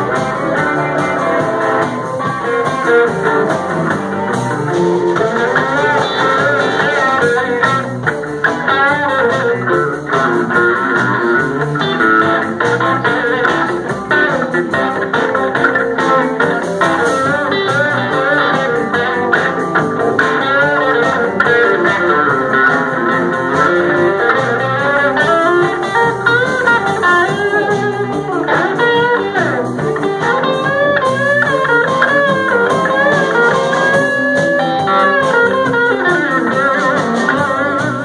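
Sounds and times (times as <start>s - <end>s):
blues band playing: 0.0s - 38.0s
blues harmonica: 0.0s - 38.0s.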